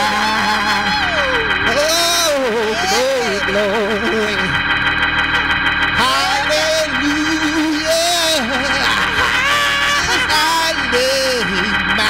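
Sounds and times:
held organ chord: 0.0 - 12.0
man singing wordless run: 6.0 - 9.2, 10.1 - 12.0.

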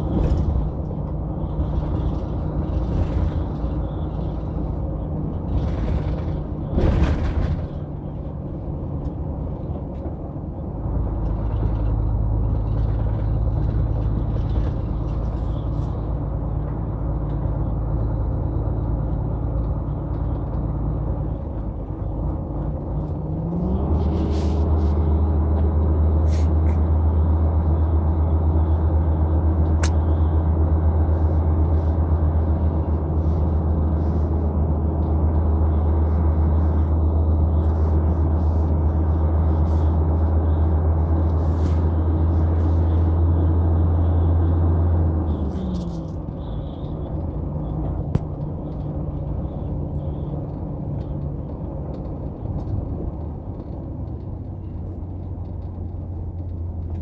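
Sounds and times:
truck diesel engine running: 0.0 - 57.0.

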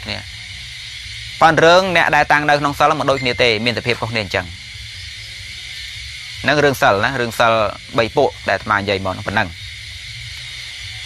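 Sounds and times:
man speaking: 0.0 - 0.2, 1.4 - 4.6, 6.4 - 9.6
low hum: 0.0 - 7.8
steady hiss: 0.0 - 11.0.

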